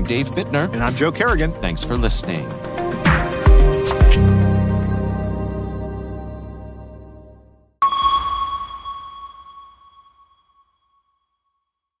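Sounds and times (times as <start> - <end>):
electronic chime ping: 7.8 - 10.5.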